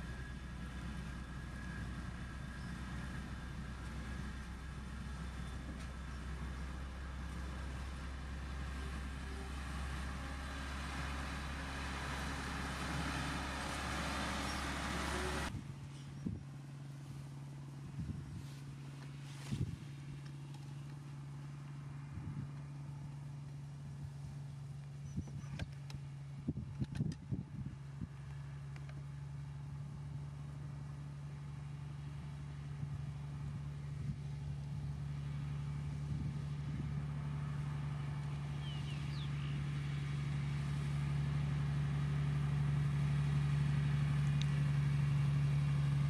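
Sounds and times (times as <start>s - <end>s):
truck diesel engine running: 0.0s - 15.8s, 27.8s - 46.0s.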